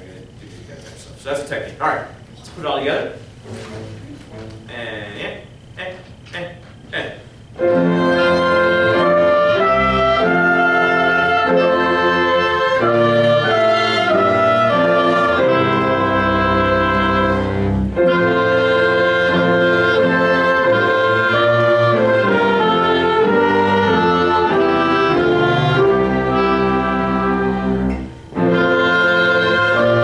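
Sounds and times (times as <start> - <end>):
small ensemble playing slow chords: 2.2 - 30.0.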